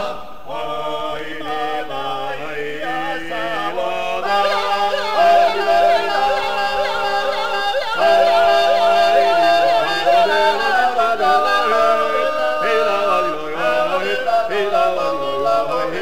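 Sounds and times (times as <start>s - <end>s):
male choir singing chords: 0.0s - 16.0s
yodelling top voice: 2.8s - 16.0s.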